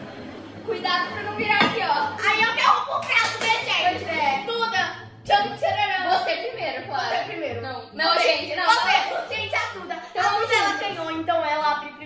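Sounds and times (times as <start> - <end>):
girls talking: 0.6 - 12.0.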